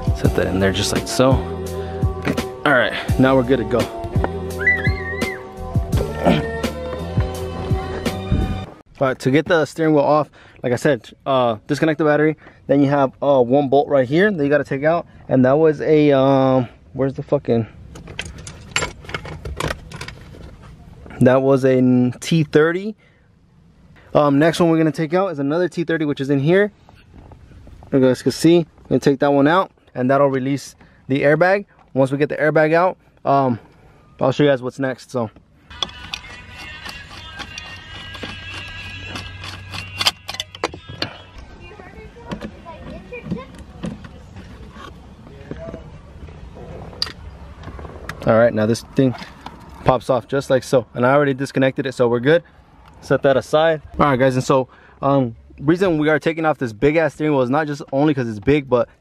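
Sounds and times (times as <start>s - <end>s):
background music chords: 0.0s - 8.8s
screwdriver metallic clicks: 35.8s - 40.8s.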